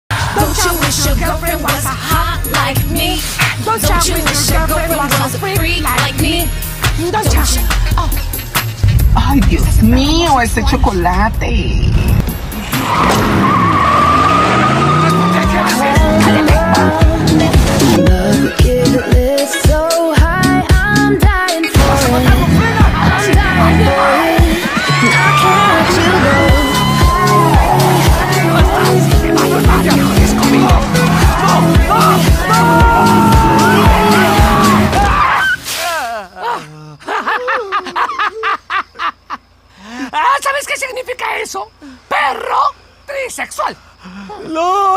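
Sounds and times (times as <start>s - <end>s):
car engine revving: 7.4s - 18.1s, 25.6s - 34.9s
car tyres squealing: 12.1s - 16.4s
woman laughing: 36.0s - 40.4s.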